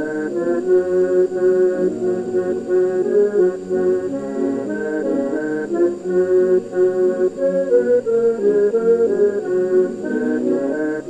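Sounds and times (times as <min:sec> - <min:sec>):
accordion playing melody: 0:00.0 - 0:11.0
pipe organ: 0:00.0 - 0:11.0.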